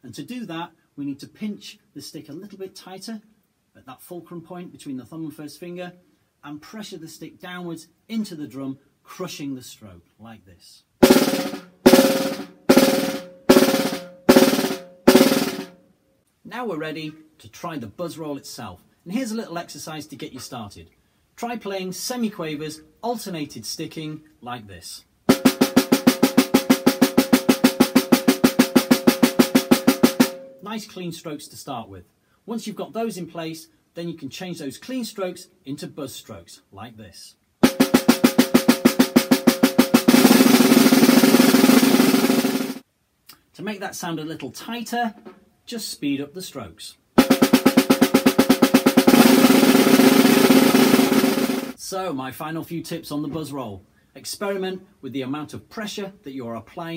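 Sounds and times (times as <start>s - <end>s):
snare drum buzz strokes: 11.0s - 15.8s, 25.3s - 30.6s, 37.6s - 42.8s, 47.2s - 51.8s.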